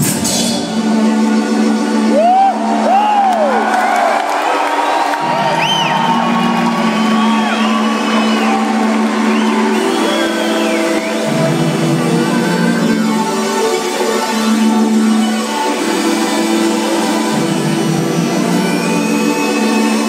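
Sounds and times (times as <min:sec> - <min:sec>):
synth chords with bass: 0:00.0 - 0:20.0
crowd whooping and cheering: 0:02.0 - 0:13.8, 0:18.1 - 0:20.0.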